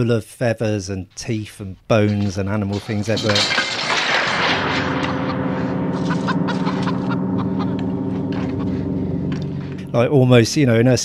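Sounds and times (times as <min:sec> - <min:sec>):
low droning hum: 0:03.4 - 0:11.0.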